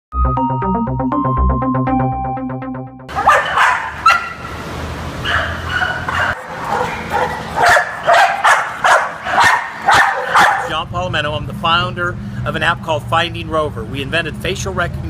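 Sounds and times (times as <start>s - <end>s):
many dogs barking: 3.1s - 4.6s, 5.2s - 10.8s.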